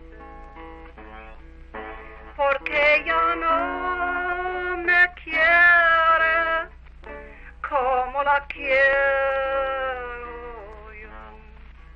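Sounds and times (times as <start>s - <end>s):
guitar: 0.0s - 11.9s
steady low hum: 0.0s - 11.9s
woman singing love song: 2.3s - 6.7s, 7.6s - 11.7s.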